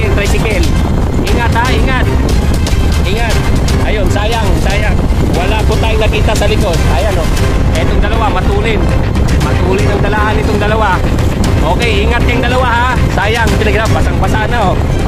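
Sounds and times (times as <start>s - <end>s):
vehicle running: 0.0s - 15.0s
wind on microphone: 0.0s - 15.0s
person speaking: 3.0s - 14.8s.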